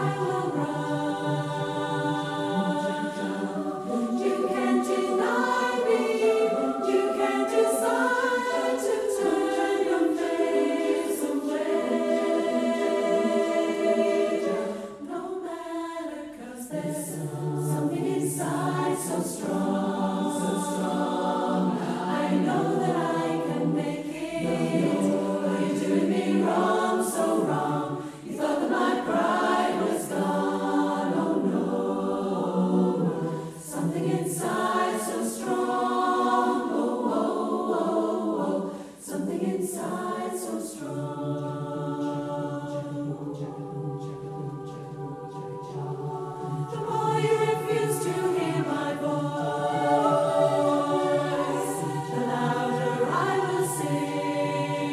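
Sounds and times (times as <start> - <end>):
choir singing slow chords: 0.0 - 54.9.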